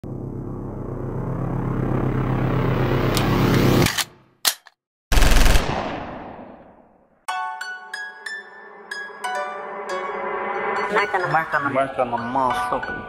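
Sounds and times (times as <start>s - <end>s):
rumbling riser with rattling pulse: 0.0s - 3.9s.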